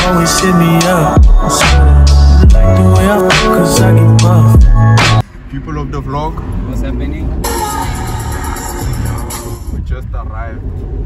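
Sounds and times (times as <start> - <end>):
background music: 0.0 - 5.2, 7.4 - 9.8
car engine and road rumble: 0.0 - 11.0.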